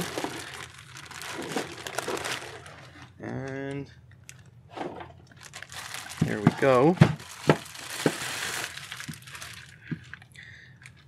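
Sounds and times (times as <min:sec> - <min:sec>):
plastic bag crinkling: 0:00.0 - 0:03.7, 0:05.2 - 0:11.0.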